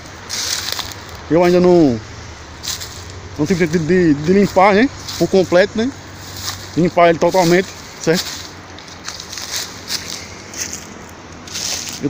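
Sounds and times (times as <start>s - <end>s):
footsteps on dry leaves: 0.0s - 12.0s.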